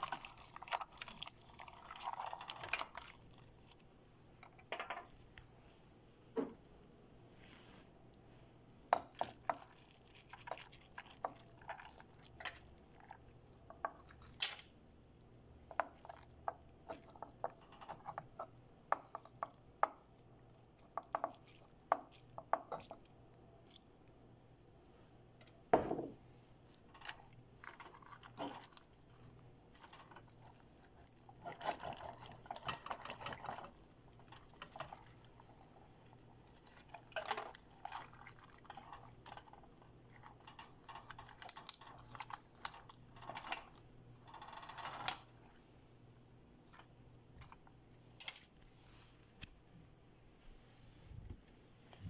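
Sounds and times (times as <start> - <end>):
wet rice squelching in metal pot: 26.5 - 44.6.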